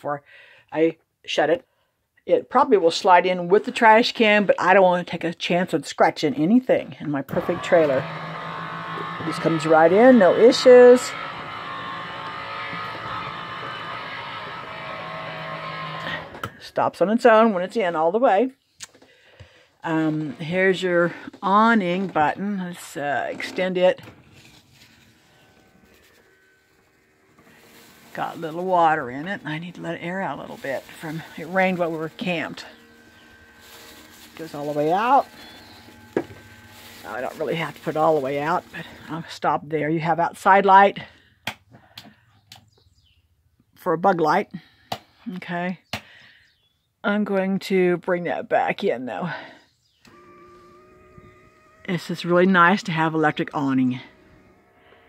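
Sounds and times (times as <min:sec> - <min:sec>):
awning motor humming: 0:07.3 - 0:16.6, 0:19.8 - 0:39.3, 0:50.0 - 0:55.0.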